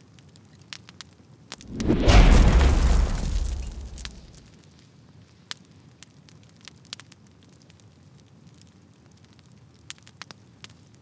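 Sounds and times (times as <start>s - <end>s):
fire crackling with pops: 1.6s - 4.4s, 5.6s - 11.0s
low rumbling hiss: 1.7s - 4.4s.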